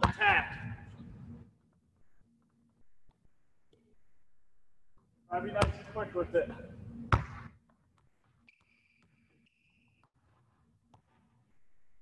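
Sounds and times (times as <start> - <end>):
basketball bounce: 7.1 - 7.5.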